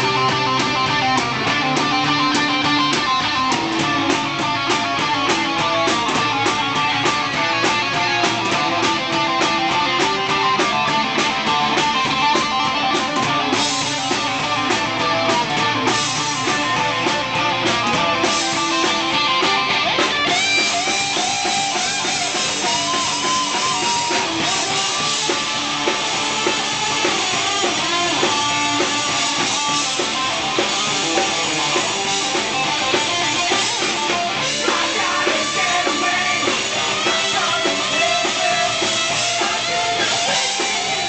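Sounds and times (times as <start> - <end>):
drum kit: 0.0 - 41.0
electric guitar: 0.0 - 41.0.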